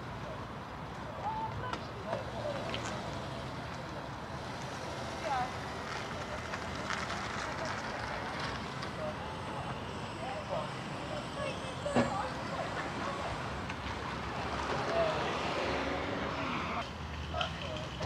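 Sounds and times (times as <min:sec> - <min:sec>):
distant voices: 0:00.0 - 0:18.0
traffic rumble: 0:00.0 - 0:18.0
wind: 0:00.0 - 0:18.0.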